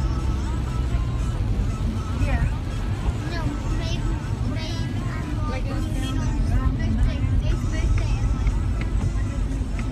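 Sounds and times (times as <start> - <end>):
engine and tyre rumble: 0.0 - 9.9.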